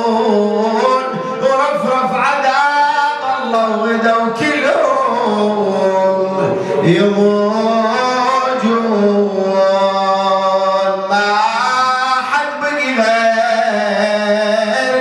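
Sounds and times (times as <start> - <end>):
man chanting into a microphone: 0.0 - 15.0.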